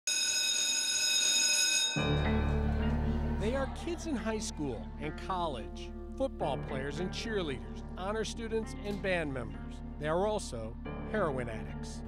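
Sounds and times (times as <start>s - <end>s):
electric school bell ringing: 0.1s - 2.5s.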